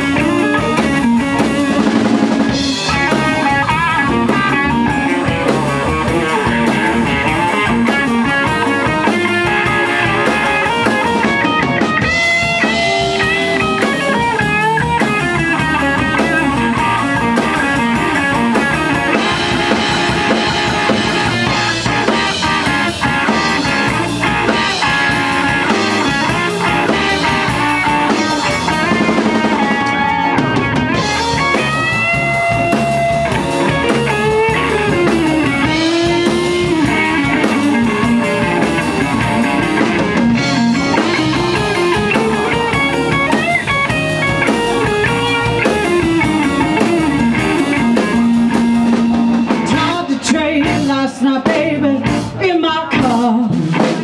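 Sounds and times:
drum kit: 0:00.0 - 0:54.0
electric guitar lead lines: 0:00.0 - 0:54.0.

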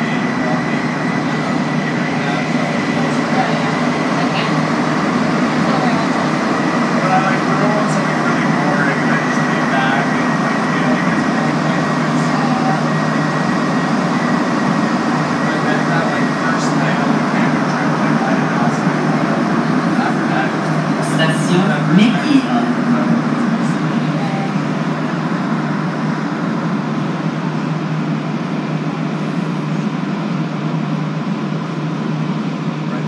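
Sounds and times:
faint passenger voices: 0:00.0 - 0:33.0
train rumble with high whine: 0:00.0 - 0:33.0.

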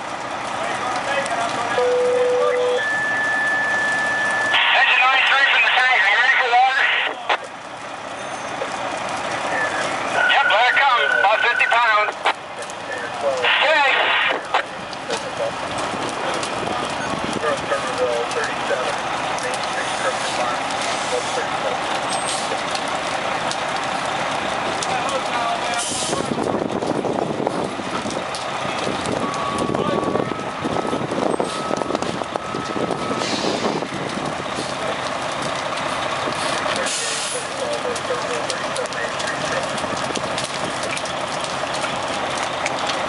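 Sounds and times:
fire engine diesel engine running: 0:00.0 - 0:43.0
air brakes hissing: 0:33.2 - 0:33.8.

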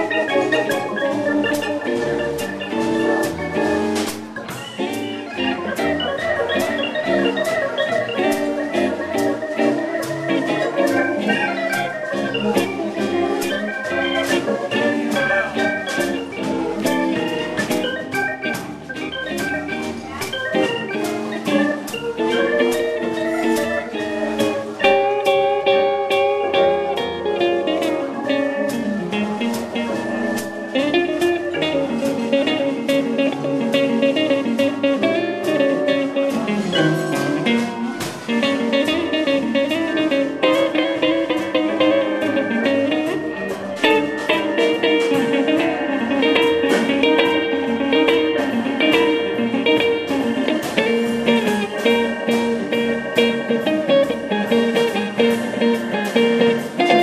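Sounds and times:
blues instrumental music: 0:00.0 - 0:57.0
guitar-like keyboard lead: 0:00.0 - 0:57.0.

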